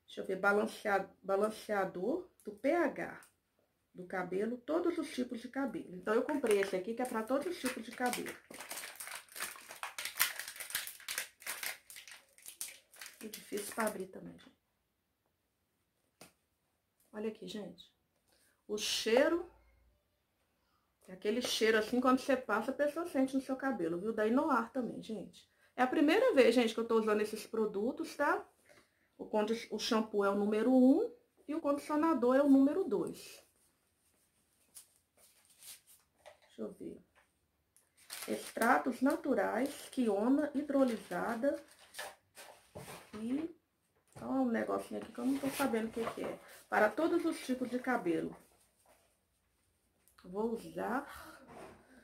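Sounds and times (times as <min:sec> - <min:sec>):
plastic bottle crinkling and clicking: 0:06.3 - 0:14.0.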